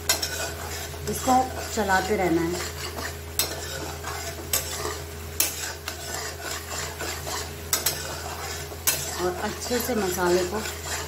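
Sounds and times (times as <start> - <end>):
soft frying sizzle: 0.0 - 11.0
spatula scraping paste in pan: 0.0 - 11.0.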